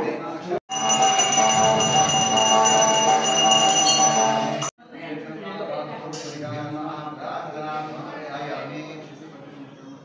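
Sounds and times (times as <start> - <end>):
brass hand bell ringing: 0.7 - 4.7.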